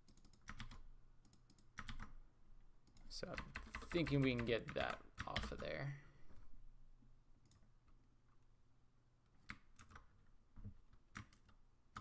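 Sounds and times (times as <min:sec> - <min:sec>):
computer keys clicking: 0:00.0 - 0:02.2, 0:02.8 - 0:05.7, 0:07.4 - 0:07.7, 0:09.4 - 0:10.2, 0:10.9 - 0:12.0.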